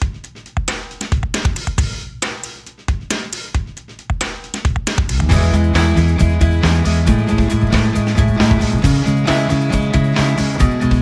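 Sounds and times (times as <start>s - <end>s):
rock drum beat: 0.0s - 11.0s
band playing sustained chords: 5.2s - 11.0s.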